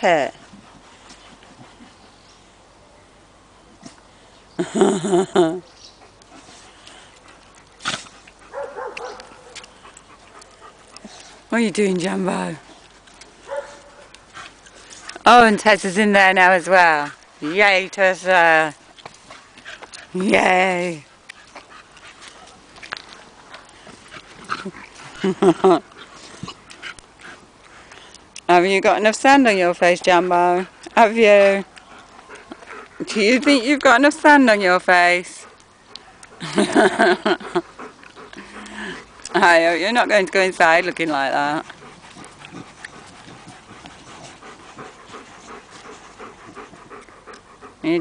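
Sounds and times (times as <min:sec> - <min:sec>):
dog vocal sound: 0:41.4 - 0:48.0.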